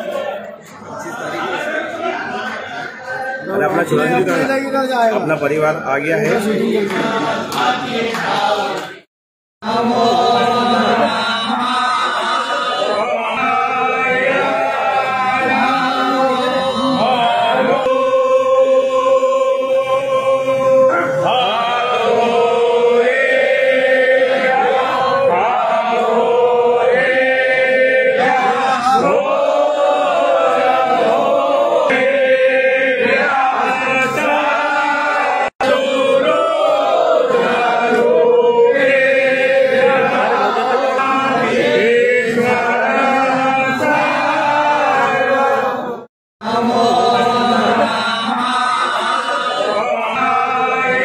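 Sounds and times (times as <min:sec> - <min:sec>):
men chanting together: 0:06.0 - 0:51.0.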